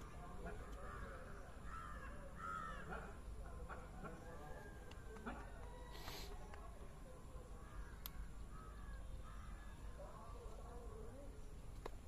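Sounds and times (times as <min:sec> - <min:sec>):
bird calling: 0:00.0 - 0:04.7, 0:07.6 - 0:10.4.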